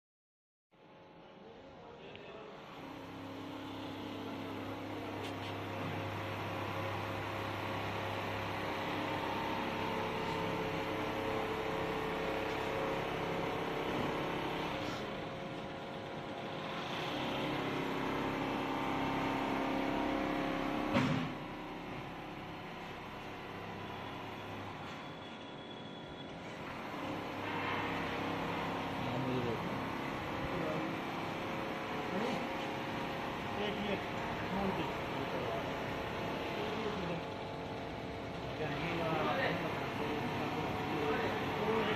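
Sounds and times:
quilting machine humming: 2.6 - 25.5, 26.2 - 41.9.

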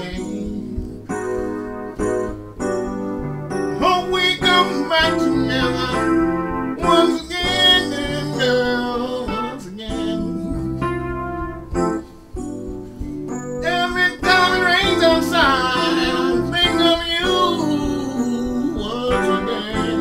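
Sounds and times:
man singing: 0.0 - 1.2, 3.7 - 11.6, 13.6 - 20.0
electronic keyboard: 0.0 - 20.0.

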